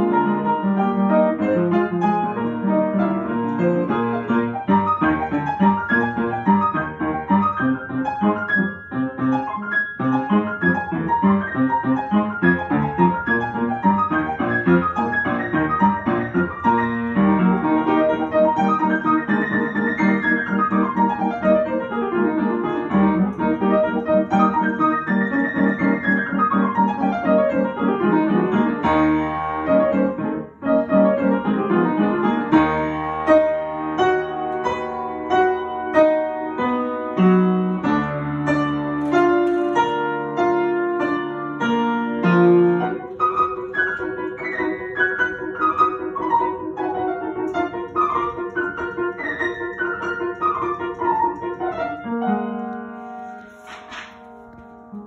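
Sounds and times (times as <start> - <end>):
upright piano playing: 0.0 - 55.0.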